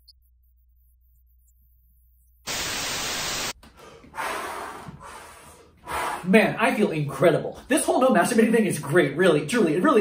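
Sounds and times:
tv static hiss: 2.5s - 3.6s.

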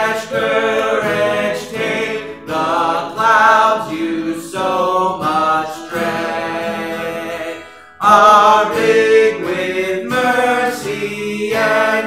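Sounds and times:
acoustic guitar: 0.0s - 12.0s
man singing: 0.0s - 12.0s.

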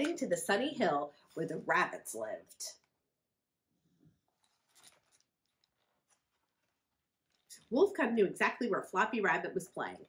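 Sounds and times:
book rustling: 4.2s - 7.5s.

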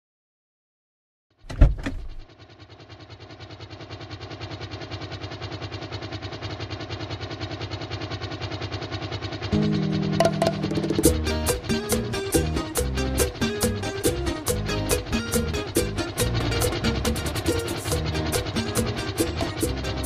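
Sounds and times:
sharp knocks: 1.5s - 2.2s
car engine starting and running: 1.5s - 2.3s, 9.4s - 20.0s
music with bass line: 9.6s - 20.0s.

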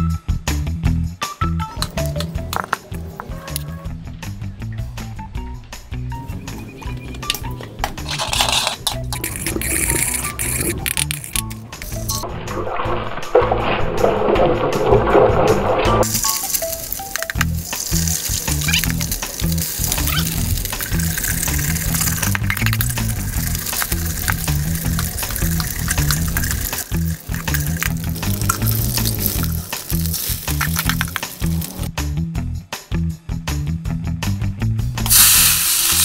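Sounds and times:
eggs frying in oil: 16.0s - 31.9s, 35.1s - 36.0s
music with repeating bass line: 17.2s - 35.1s.

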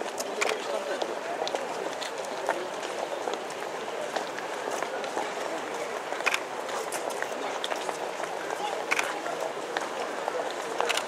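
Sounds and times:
crowd footsteps on asphalt: 0.0s - 11.0s
low chatter: 0.0s - 11.0s.

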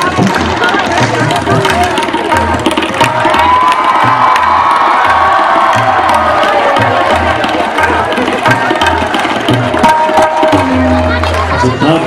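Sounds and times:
steady drumbeat: 0.0s - 12.0s.

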